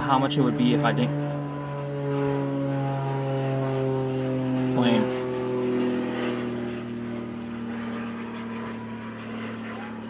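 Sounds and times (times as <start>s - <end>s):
low engine drone: 0.0s - 10.0s.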